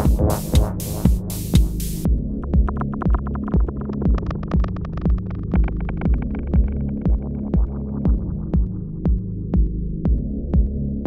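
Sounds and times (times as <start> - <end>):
hi-hats: 0.0 - 2.1
kick drum: 0.0 - 11.0.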